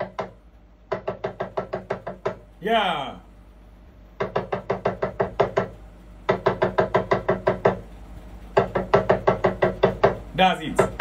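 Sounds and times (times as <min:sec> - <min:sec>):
talking drum beats: 0:00.0 - 0:03.4, 0:04.0 - 0:11.0.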